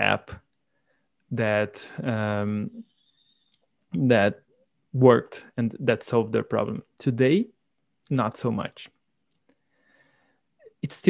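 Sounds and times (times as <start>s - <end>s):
man speaking: 0.0s - 0.4s, 1.3s - 2.8s, 4.0s - 4.4s, 5.0s - 7.5s, 8.1s - 8.9s, 10.7s - 11.0s
faint breath: 9.6s - 10.5s.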